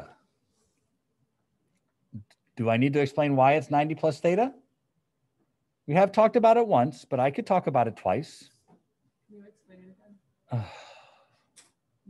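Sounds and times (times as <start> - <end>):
man sighing: 10.5 - 11.3.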